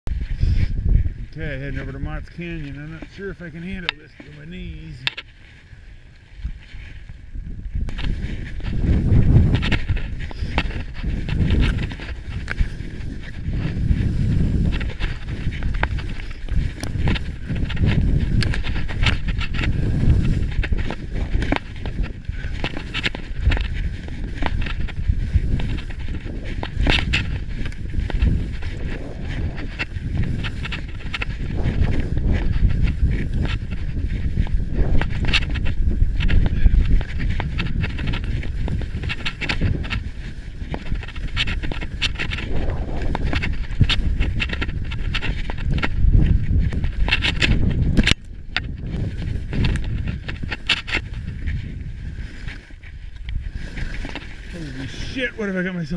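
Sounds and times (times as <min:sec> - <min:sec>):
wind rumble on microphone: 0:00.0 - 0:55.9
skis scraping over snow: 0:00.1 - 0:55.9.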